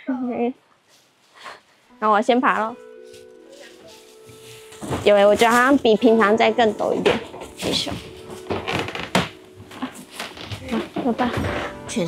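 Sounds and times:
footsteps on wooden stairs: 6.9 - 12.0.

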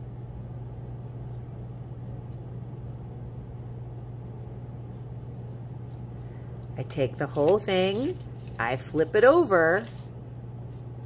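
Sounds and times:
steady low hum: 0.0 - 11.0
paper being folded: 2.0 - 11.0.

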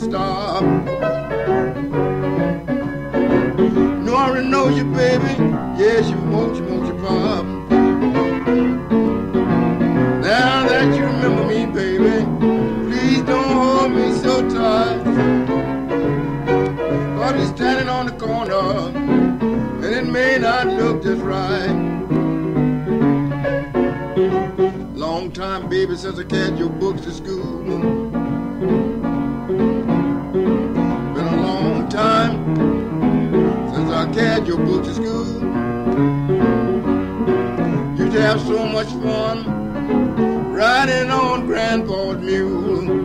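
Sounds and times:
blues piano playing: 0.0 - 43.0.

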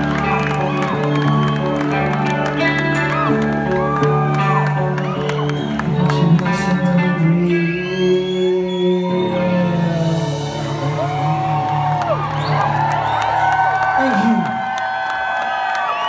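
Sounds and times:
crowd cheering and whooping: 0.0 - 6.9, 8.1 - 16.0.

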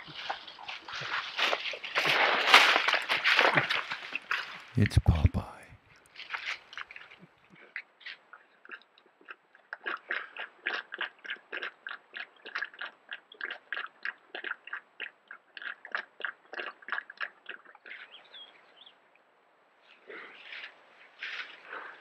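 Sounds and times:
bear chewing plants: 0.0 - 4.7, 6.1 - 18.1.

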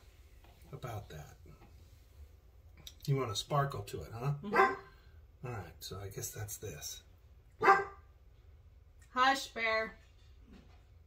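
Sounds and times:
dog barking: 4.5 - 4.9, 7.6 - 8.0.

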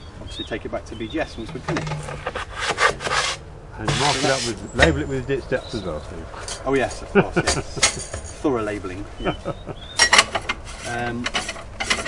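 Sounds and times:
plastic tube scraping on metal: 1.5 - 5.0.

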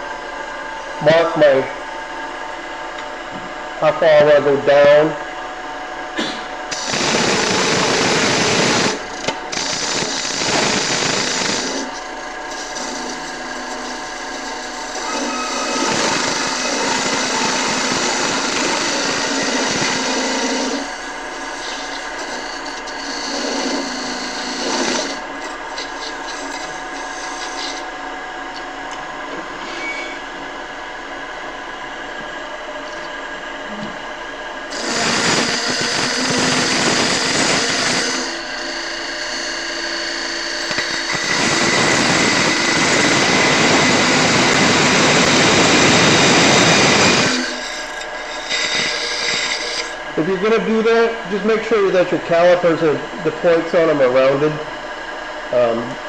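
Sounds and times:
wood lathe running: 6.6 - 29.6, 32.7 - 56.0
turning tool cutting wood: 6.7 - 28.8, 34.7 - 54.4.

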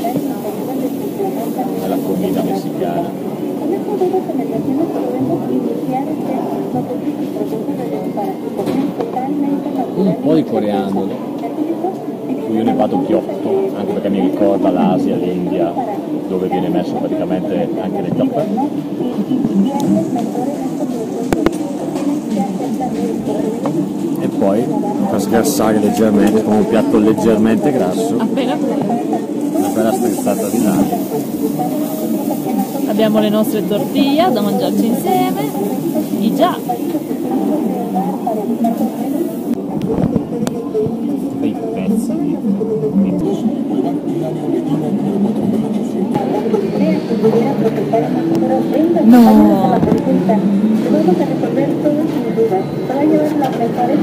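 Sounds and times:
background chatter of voices: 0.0 - 54.0
people talking: 0.0 - 54.0.

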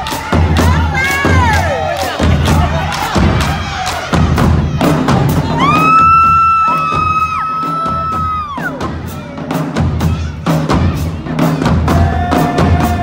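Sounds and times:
marching drumline: 0.0 - 13.0.

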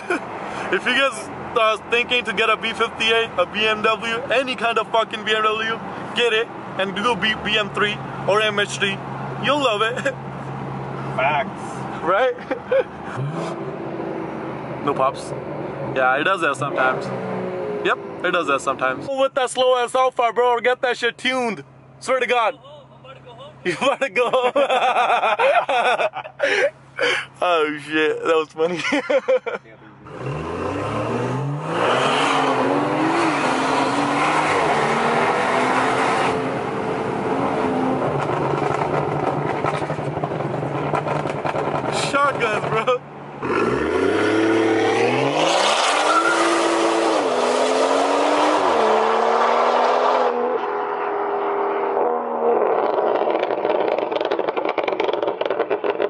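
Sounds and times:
car engine drone: 0.0 - 56.0
road noise inside car: 29.8 - 56.0.

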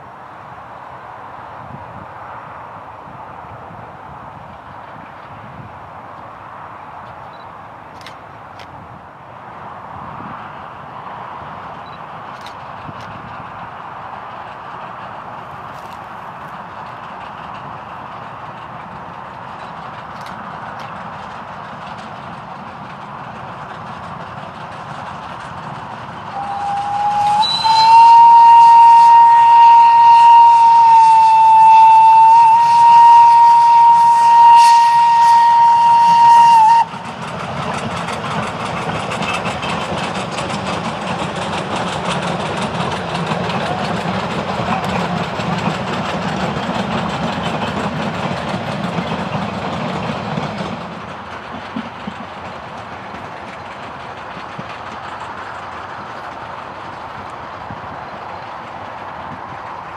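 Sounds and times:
train rolling rumble on rails: 0.0 - 59.9
steam locomotive whistle: 26.3 - 37.0.

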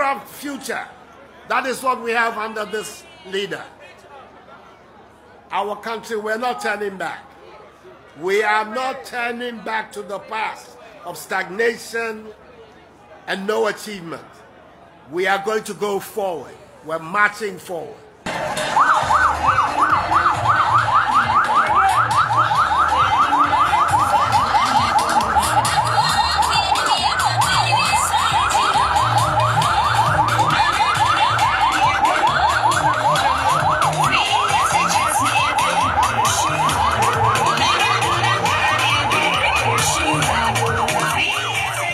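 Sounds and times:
siren yelping: 18.3 - 41.9.

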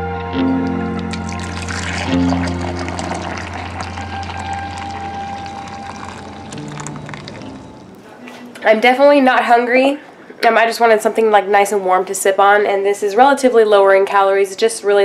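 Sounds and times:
background music with held notes: 0.0 - 8.2
liquid pouring into a ceramic mug: 1.0 - 8.0.

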